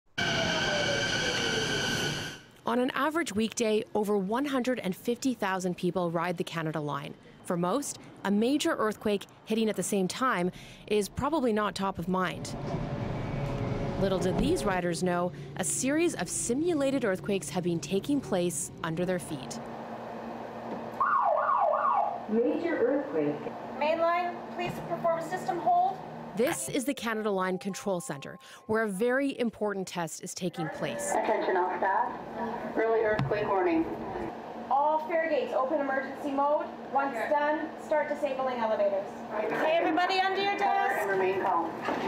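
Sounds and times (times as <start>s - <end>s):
falling tone alarm: 0.2s - 2.5s, 21.0s - 22.2s
electric train high whine: 0.2s - 2.6s, 12.4s - 18.1s, 18.7s - 21.0s.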